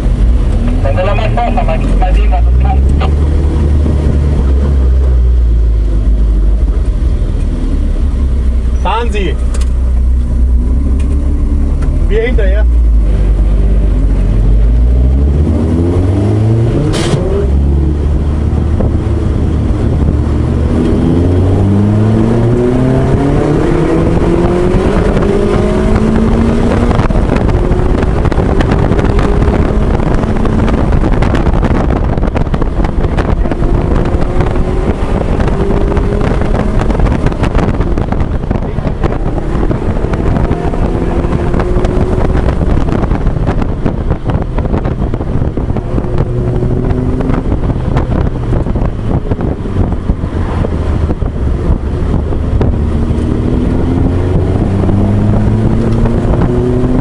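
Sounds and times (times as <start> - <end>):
car engine accelerating: 0.0 - 57.0
wind noise: 0.0 - 57.0.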